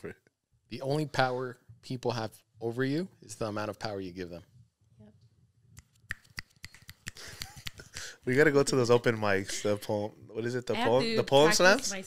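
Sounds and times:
fingers snapping: 5.8 - 8.0.

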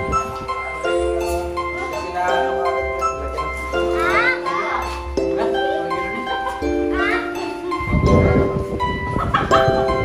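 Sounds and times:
music of held steady notes: 0.0 - 10.0
rough low noise: 0.0 - 10.0.

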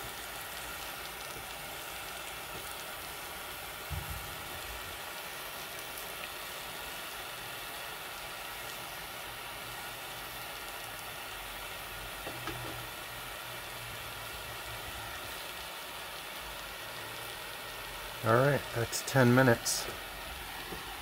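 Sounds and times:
burner flame hissing: 0.0 - 21.0.

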